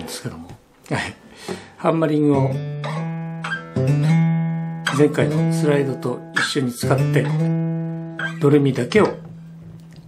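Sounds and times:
acoustic guitar single notes: 1.4 - 10.0.

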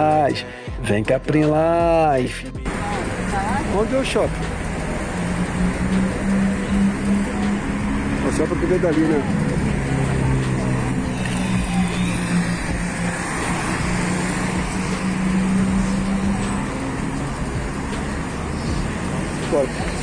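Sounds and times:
vehicle engine humming: 0.0 - 20.0
cars driving past: 2.6 - 20.0.

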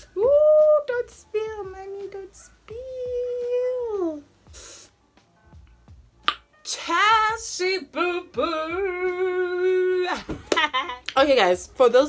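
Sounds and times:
woman speaking: 0.2 - 4.2, 11.1 - 12.0
breathy hiss: 4.5 - 5.0.

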